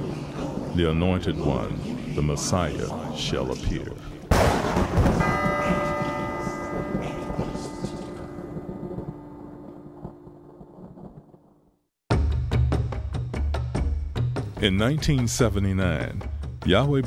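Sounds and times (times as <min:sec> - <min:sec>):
loud boom: 0:04.3 - 0:05.6
bell-like tone ringing: 0:05.2 - 0:11.0.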